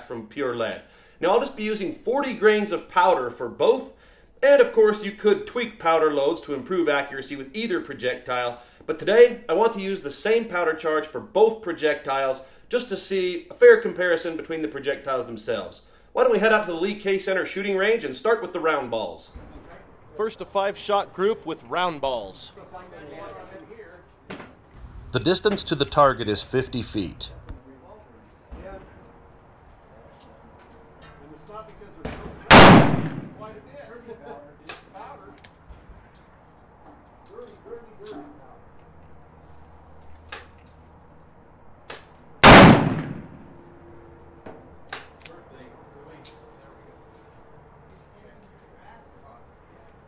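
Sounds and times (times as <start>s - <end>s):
revolver gunshot with echo: 32.0s - 33.5s, 42.4s - 43.5s.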